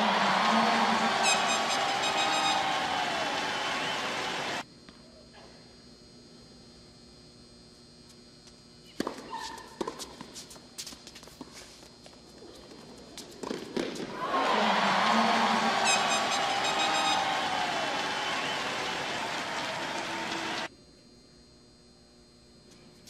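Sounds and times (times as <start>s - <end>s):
crowd cheering and applause: 0.0s - 4.6s, 14.1s - 20.7s
tennis ball hit by rackets: 13.4s - 14.2s.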